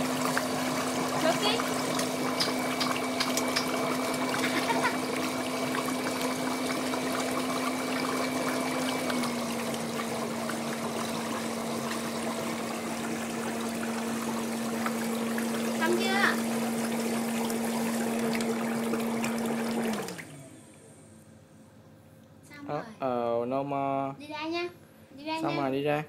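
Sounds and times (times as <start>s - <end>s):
water churning and bubbling: 0.0s - 20.4s
foot spa motor hum: 0.0s - 26.0s.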